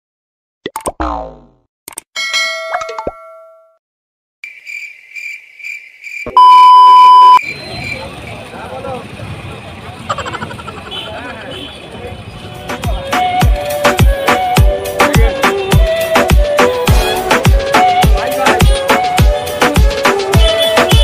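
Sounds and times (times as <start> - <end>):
cartoon falling boing: 0.6 - 1.6
ringing ding: 2.2 - 3.8
street noise: 6.2 - 21.0
loud steady beep: 6.3 - 7.8
pulsing high beep: 6.4 - 7.4
voices: 7.4 - 13.4.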